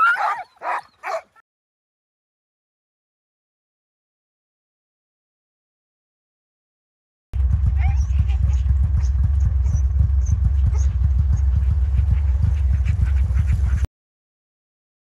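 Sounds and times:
dogs yipping and whining: 0.0 - 1.4, 7.8 - 13.9
heavy low rumble: 7.4 - 13.9.

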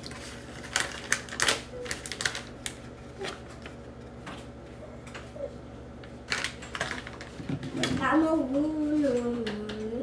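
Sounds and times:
plastic bag crinkling: 0.0 - 3.8, 6.3 - 8.0.

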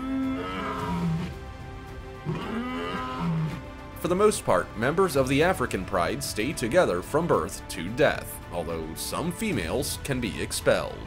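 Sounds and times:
male lion roaring: 0.0 - 1.4, 2.2 - 3.6.

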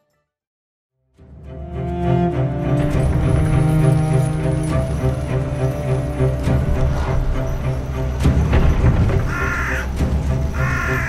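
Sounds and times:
dark low background music: 1.1 - 11.0
crow cawing: 9.2 - 11.0.

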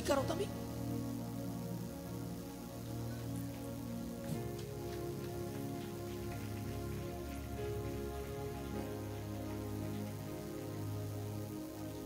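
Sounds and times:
soft music of sustained chords: 0.0 - 12.0
steady hiss: 0.0 - 12.0.

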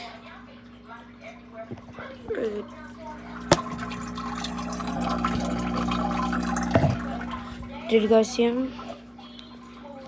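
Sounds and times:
aquarium equipment hum: 0.0 - 10.0
aquarium water splashing: 0.0 - 10.0.

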